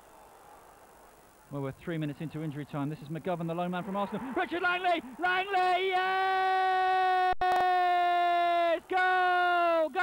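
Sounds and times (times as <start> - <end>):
commentator yelling: 3.8 - 10.0.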